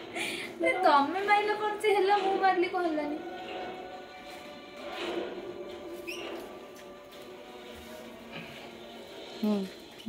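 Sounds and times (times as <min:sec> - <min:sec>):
rising high squeak: 0:05.9 - 0:06.7.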